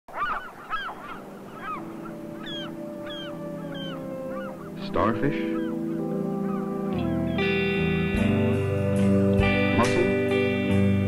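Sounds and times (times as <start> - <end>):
gulls calling: 0.1 - 10.7
sustained low music notes: 1.2 - 11.0.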